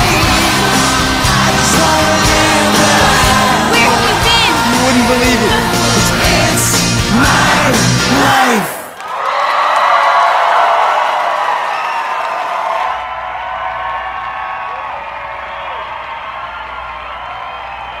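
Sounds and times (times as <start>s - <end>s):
crowd voices talking and calling: 0.0s - 8.9s
party music: 0.0s - 9.0s.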